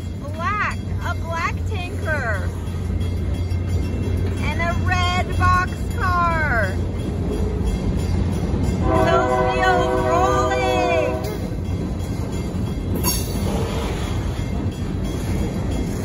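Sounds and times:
train wheels rumbling on rails: 0:00.0 - 0:16.0
train horn chord: 0:08.8 - 0:11.5.

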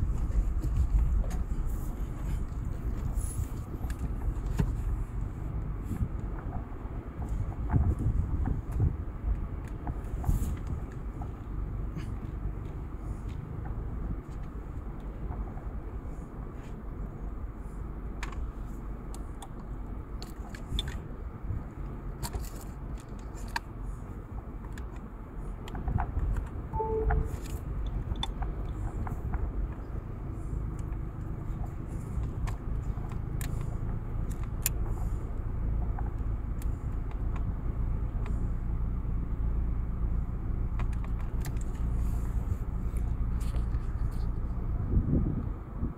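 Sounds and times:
car engine and tyres rumbling: 0:00.0 - 0:45.9.

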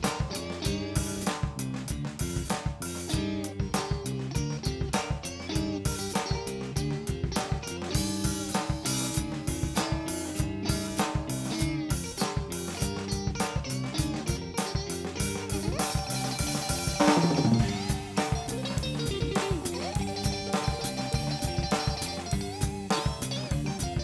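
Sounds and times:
electric blues band playing: 0:00.0 - 0:24.0.

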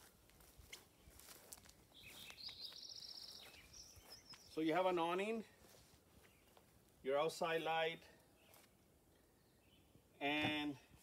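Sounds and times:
songbird trill: 0:00.6 - 0:05.4, 0:06.2 - 0:10.7.

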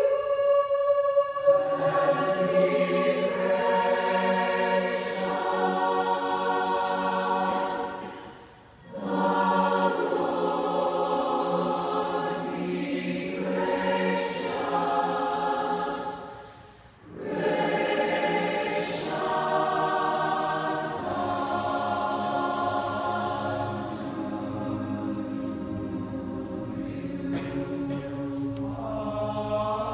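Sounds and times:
mixed choir singing: 0:00.0 - 0:29.9.

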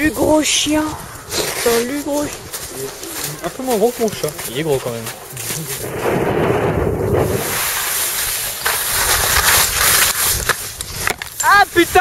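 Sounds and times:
wind rushing over microphone: 0:00.0 - 0:12.0
skis hissing over snow: 0:07.2 - 0:12.0.

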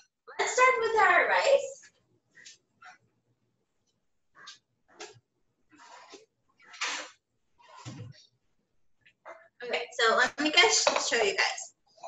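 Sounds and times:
cookware clattering and scraping: 0:10.4 - 0:11.3.

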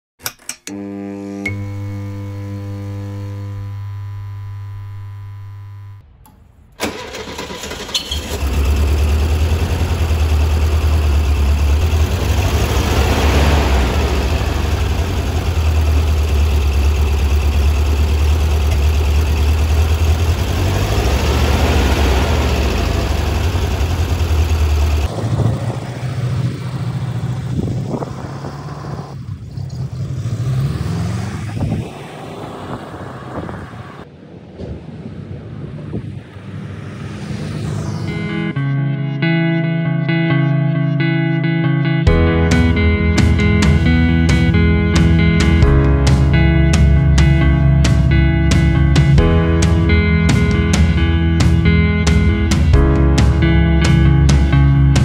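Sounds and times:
held music chord: 0:00.7 - 0:06.0, 0:38.1 - 0:55.0
car engine revving: 0:00.8 - 0:06.0, 0:06.8 - 0:34.1
car engine starting and idling: 0:01.5 - 0:31.5, 0:42.1 - 0:55.0
car pulling away: 0:06.8 - 0:34.1
wind noise: 0:25.1 - 0:30.0, 0:30.6 - 0:38.7.

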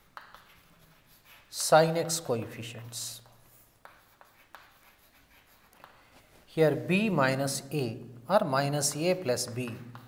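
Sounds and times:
chalk scratching on chalkboard: 0:00.0 - 0:06.9.

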